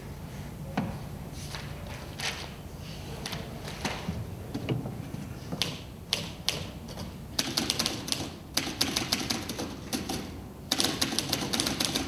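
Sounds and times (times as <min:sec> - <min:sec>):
typewriter keys clacking: 0:07.4 - 0:12.0.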